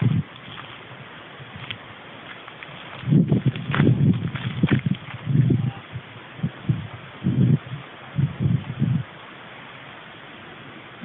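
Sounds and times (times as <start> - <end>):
wind buffeting microphone: 0.0 - 9.2.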